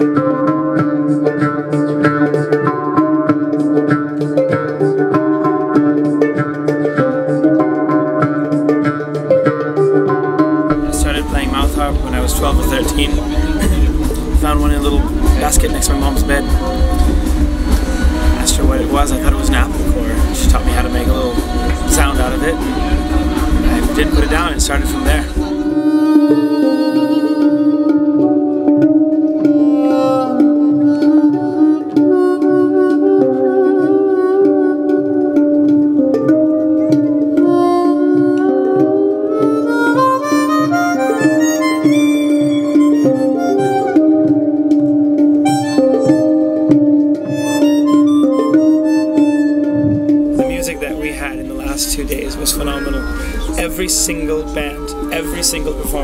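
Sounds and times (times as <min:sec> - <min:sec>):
jaw harp playing: 0:00.0 - 0:56.0.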